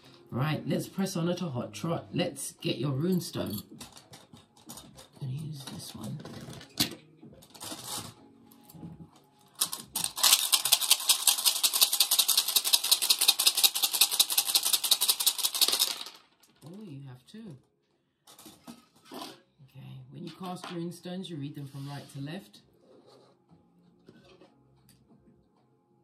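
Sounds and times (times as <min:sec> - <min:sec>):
stones clattering when shaken: 0:09.6 - 0:16.6.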